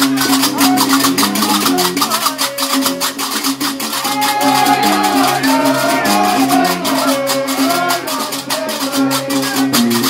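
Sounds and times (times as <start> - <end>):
iron castanets clacking: 0.0 - 10.0
plucked bass lute: 0.0 - 10.0
voices singing: 0.0 - 10.0.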